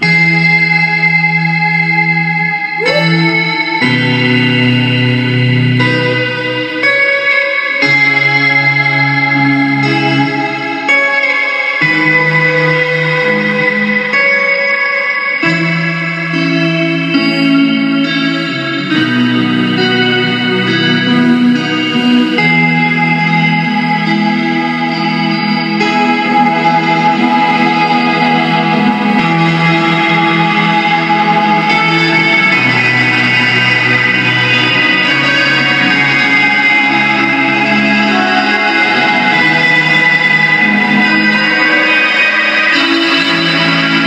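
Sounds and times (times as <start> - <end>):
electric guitar chords with echo: 0.0 - 44.0.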